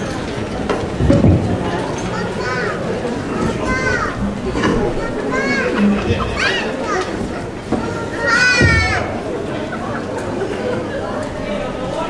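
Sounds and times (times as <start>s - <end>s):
busy steady background sound: 0.0s - 12.0s
high-pitched calling voices: 2.2s - 9.2s.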